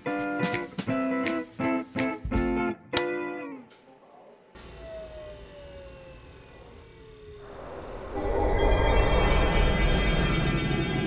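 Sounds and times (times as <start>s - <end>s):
whine gliding downward: 4.8s - 11.0s
low rumble: 7.4s - 11.0s.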